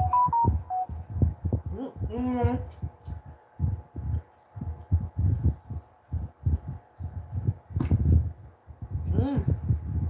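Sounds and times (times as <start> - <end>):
person humming: 9.1 - 9.6.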